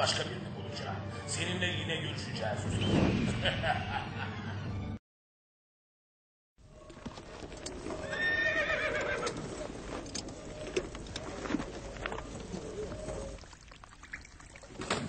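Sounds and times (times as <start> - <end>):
hoof clops and knocks: 6.8 - 8.3, 8.9 - 13.5
horse whinnying: 7.7 - 13.5.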